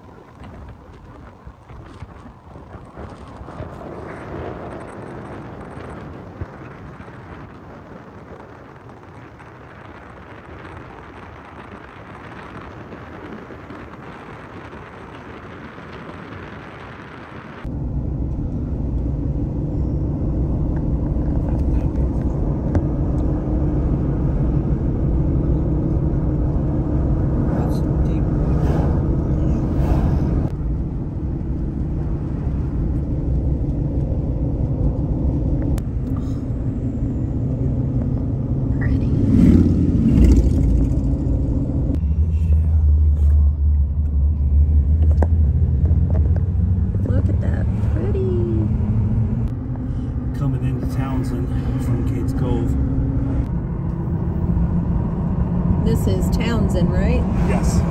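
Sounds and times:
road and engine rumble in car: 0.0s - 57.9s.

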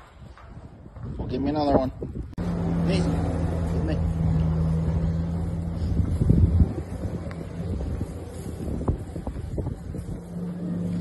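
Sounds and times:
steady machine hum: 2.4s - 11.0s.

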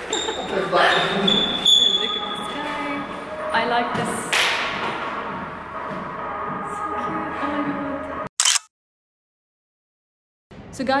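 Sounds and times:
phone camera shutter click: 8.4s - 8.7s.

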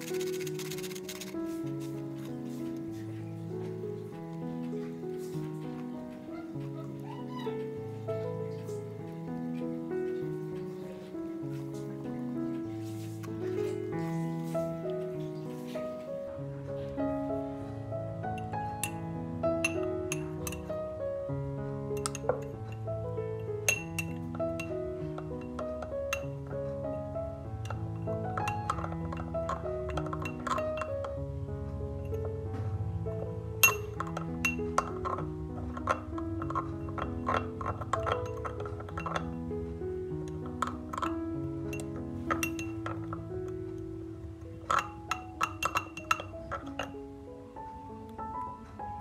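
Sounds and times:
soft background music: 0.0s - 49.0s
metal spoon clinking on glass: 19.6s - 20.7s, 22.0s - 22.8s, 23.6s - 26.4s, 27.6s - 31.0s, 33.6s - 39.4s, 40.3s - 43.3s, 44.6s - 47.0s.

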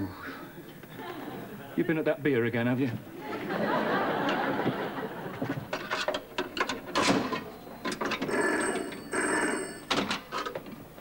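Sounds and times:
telephone bell ringing: 7.8s - 10.1s.

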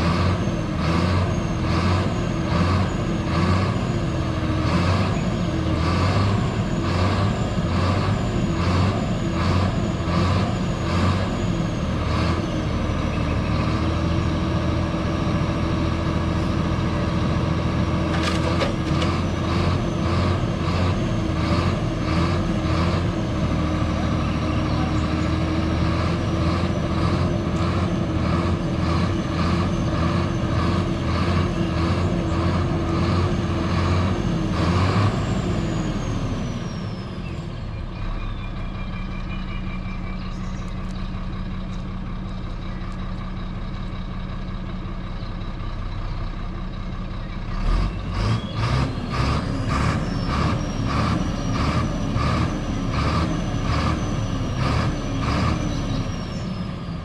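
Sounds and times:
diesel truck engine running: 0.0s - 57.0s.

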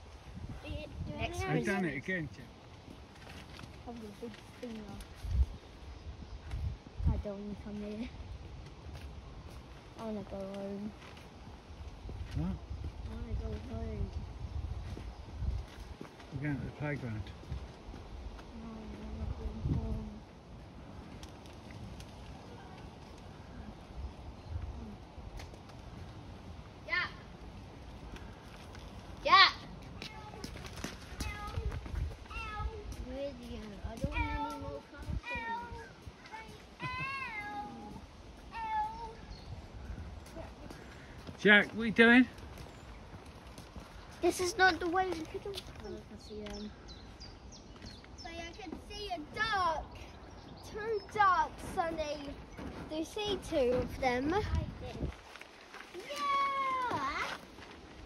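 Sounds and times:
young child whining: 36.8s - 39.3s, 56.0s - 57.4s.

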